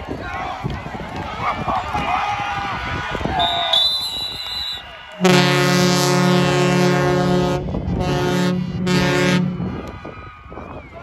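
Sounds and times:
murmur of stadium crowd: 0:00.0 - 0:11.0
stadium air horn blasts: 0:03.4 - 0:09.9.

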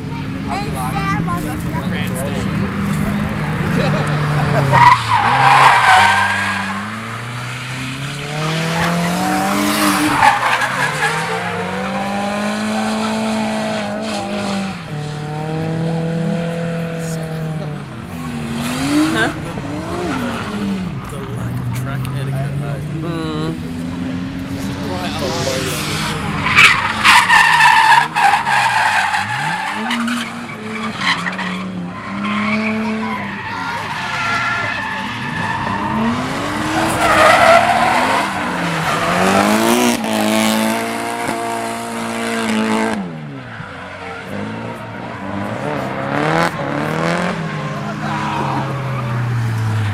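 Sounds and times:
car engines revving: 0:00.0 - 0:49.9
tyres squealing: 0:04.6 - 0:11.9, 0:25.7 - 0:41.0.

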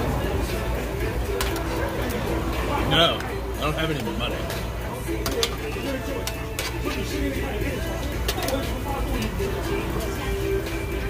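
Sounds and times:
background music: 0:00.0 - 0:11.0
background voices: 0:00.0 - 0:11.0
metal tongs clicking on grill: 0:01.3 - 0:02.2, 0:03.2 - 0:07.4, 0:08.0 - 0:09.4.

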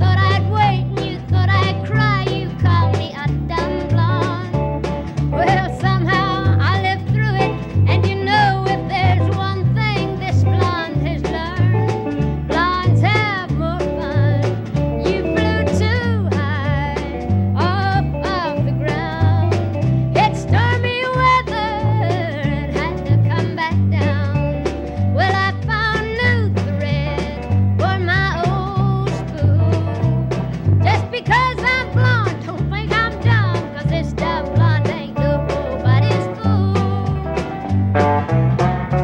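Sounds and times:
woman singing: 0:00.0 - 0:30.2, 0:30.8 - 0:37.6
bass line: 0:00.0 - 0:39.0
country band with guitar: 0:00.0 - 0:39.0.

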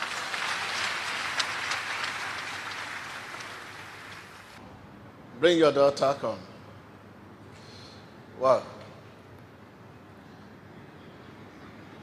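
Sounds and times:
congregation applauding: 0:00.0 - 0:04.6.

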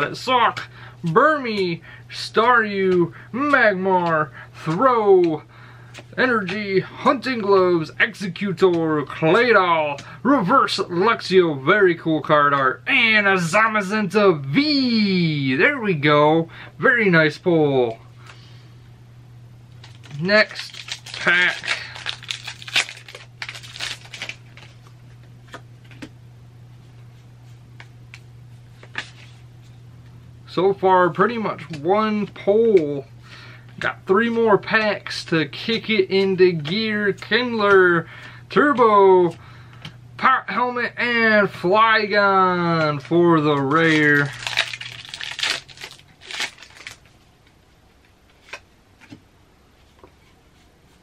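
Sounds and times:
foil wrapper crinkling and tearing: 0:19.8 - 0:24.9, 0:42.9 - 0:47.1
faint clicks of cards handled: 0:26.9 - 0:29.4.

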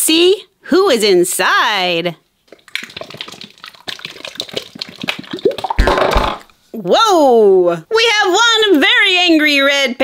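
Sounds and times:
slime popping and squelching: 0:02.5 - 0:06.5.

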